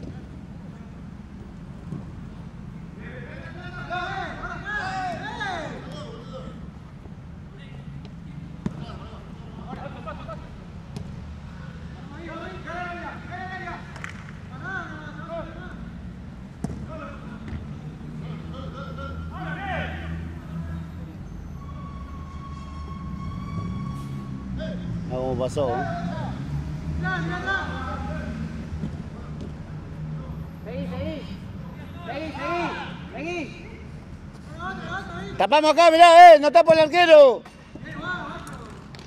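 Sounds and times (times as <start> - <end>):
football kick thuds: 16.6 - 16.9
players shouting in distance: 18.3 - 25.0, 31.1 - 38.8.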